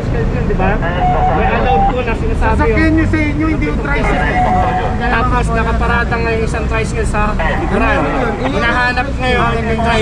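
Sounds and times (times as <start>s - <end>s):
low rumble of street noise: 0.0s - 10.0s
people talking and arguing: 0.0s - 10.0s.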